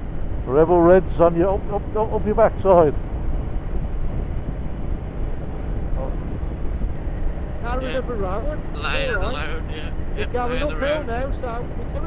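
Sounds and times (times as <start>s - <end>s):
motorcycle engine rumble: 0.0s - 12.0s
road noise: 0.0s - 12.0s
wind noise: 0.0s - 12.0s.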